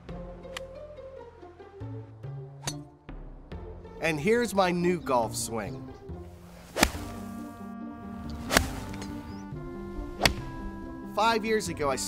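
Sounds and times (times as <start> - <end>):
background music with held notes: 0.0 - 12.0
golf club striking ball: 6.4 - 7.5, 8.2 - 9.4, 10.1 - 10.6.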